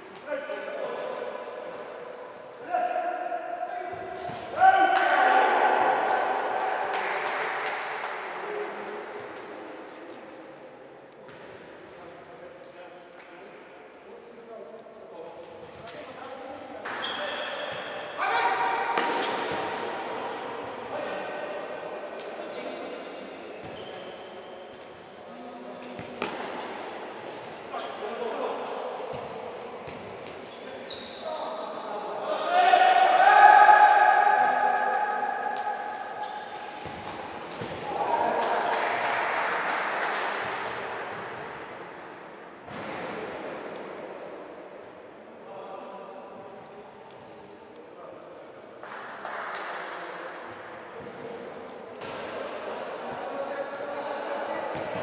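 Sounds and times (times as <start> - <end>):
players shouting: 4.5 - 6.9, 32.4 - 36.2
ball kicked and bouncing on court: 29.1 - 30.5, 36.7 - 37.9.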